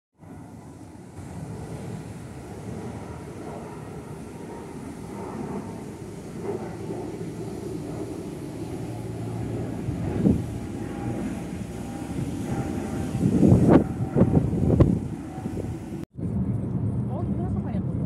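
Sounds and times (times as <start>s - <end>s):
jet airliner engines rumbling: 0.2s - 18.0s.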